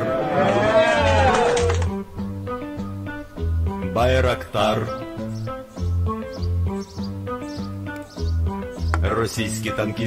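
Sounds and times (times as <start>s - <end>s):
song with guitar and bass: 0.0s - 10.0s.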